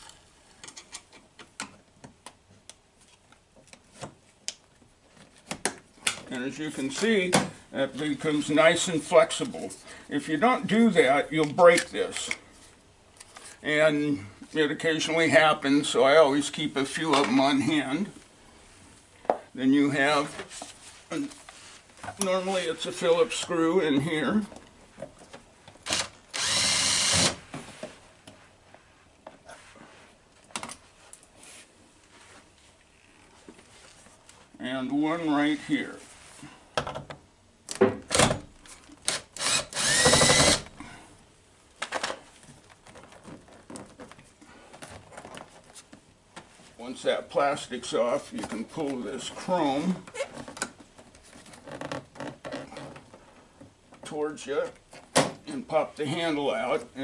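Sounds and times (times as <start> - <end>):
electric drill running: 25.9 - 27.4, 39.4 - 40.7.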